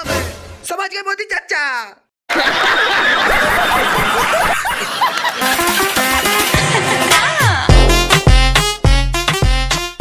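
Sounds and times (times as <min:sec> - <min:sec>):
group of people laughing: 0:02.3 - 0:07.7.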